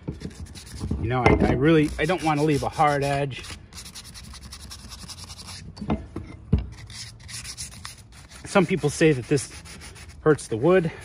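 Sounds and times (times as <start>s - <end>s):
sandpaper rubbing on wood: 0.1s - 0.9s, 1.7s - 5.6s, 6.8s - 11.0s.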